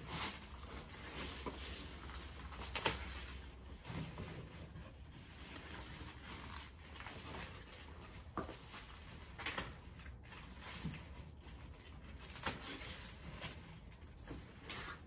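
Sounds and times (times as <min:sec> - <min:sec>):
plastic trash bag crackling: 0:00.0 - 0:15.0.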